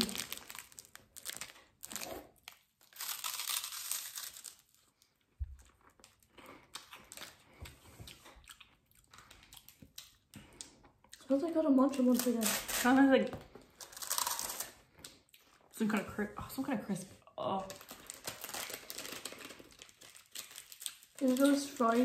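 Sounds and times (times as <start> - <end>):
plastic wrapper crinkling: 0.0 - 8.4, 11.9 - 15.5, 17.6 - 22.0
snack stick crunching: 5.6 - 11.3, 13.8 - 15.6.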